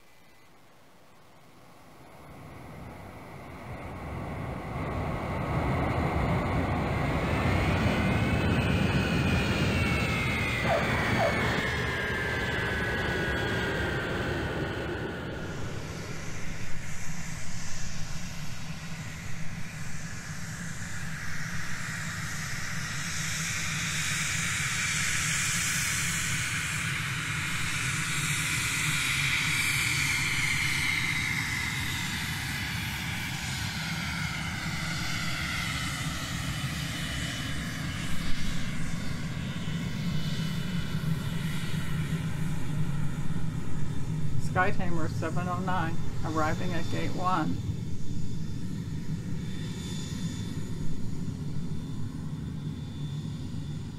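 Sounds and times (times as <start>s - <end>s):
aircraft engine flying past: 0.0s - 53.9s.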